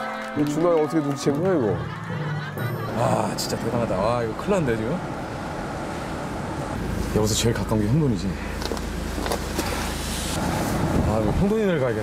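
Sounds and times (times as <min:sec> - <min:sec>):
car road and engine noise: 0:02.4 - 0:12.0.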